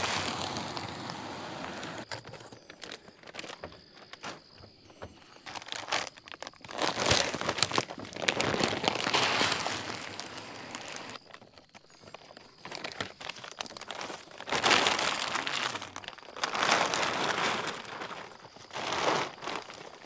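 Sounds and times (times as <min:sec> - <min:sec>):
corn pouring into a hopper: 0:00.0 - 0:02.0, 0:06.7 - 0:11.2, 0:13.9 - 0:20.0
feed sacks crinkling and rustling: 0:00.0 - 0:20.0.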